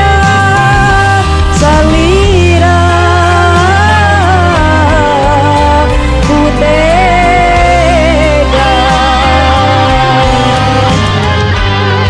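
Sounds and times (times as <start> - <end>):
woman singing: 0.0 - 11.4
pop backing track: 0.0 - 12.0.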